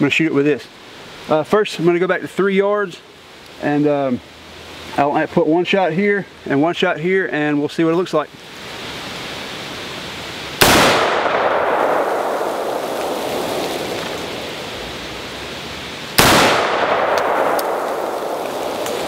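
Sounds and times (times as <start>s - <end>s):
wind in trees: 0.0s - 19.0s
rifle shots with echo: 10.6s - 14.4s, 16.2s - 19.0s.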